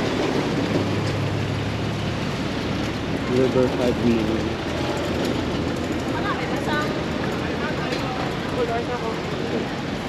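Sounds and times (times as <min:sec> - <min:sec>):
traffic hum: 0:00.0 - 0:10.0
passers-by's voices: 0:02.6 - 0:10.0.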